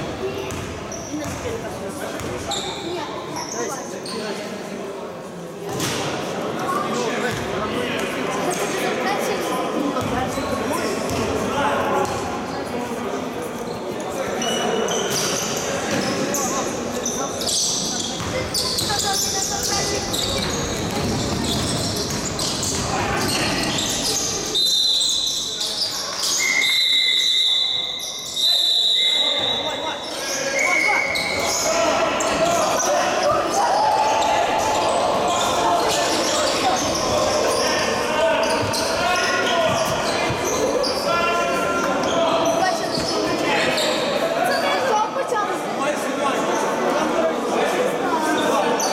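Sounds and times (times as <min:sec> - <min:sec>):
players' voices and shouts: 0:00.0 - 0:48.9
basketball bouncing on court: 0:00.3 - 0:02.5, 0:10.0 - 0:10.3, 0:11.1 - 0:11.3, 0:18.2 - 0:23.4.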